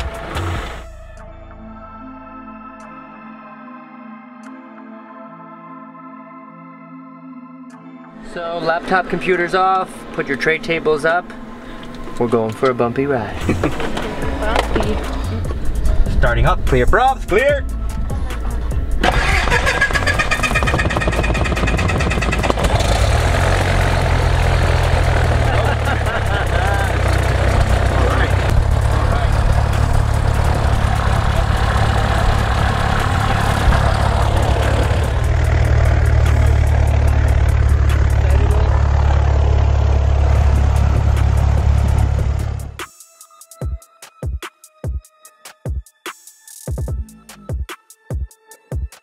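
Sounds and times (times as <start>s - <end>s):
propeller plane engine running: 19.0s - 42.8s.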